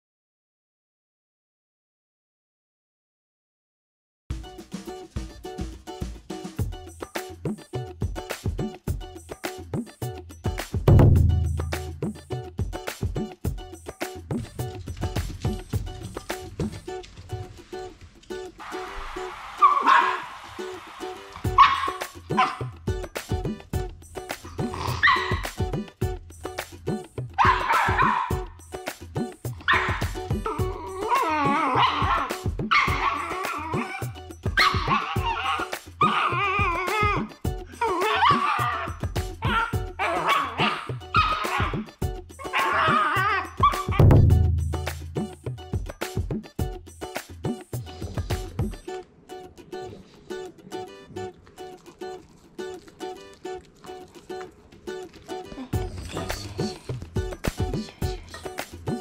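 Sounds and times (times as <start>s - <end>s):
background music: 4.3s - 59.0s
loud low sustained tone: 10.9s - 12.2s, 44.1s - 45.3s
dog barking: 19.6s - 20.4s, 21.4s - 22.7s, 24.7s - 25.6s, 27.4s - 28.5s, 29.6s - 36.8s, 37.8s - 44.0s
puppy whining: 21.2s - 22.7s, 24.3s - 25.8s, 27.4s - 28.4s, 29.6s - 44.0s.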